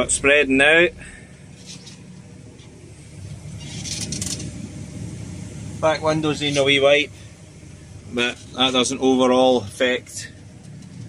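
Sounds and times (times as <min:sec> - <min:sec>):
tractor engine drone in cab: 0:00.0 - 0:11.0.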